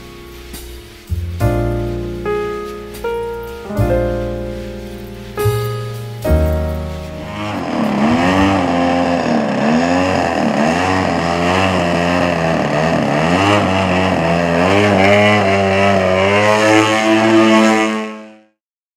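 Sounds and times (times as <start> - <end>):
model plane engine running: 7.3 - 18.2.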